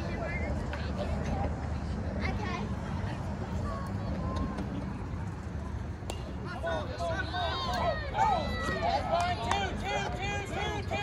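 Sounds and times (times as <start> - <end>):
crowd yelling and cheering: 6.5 - 11.0.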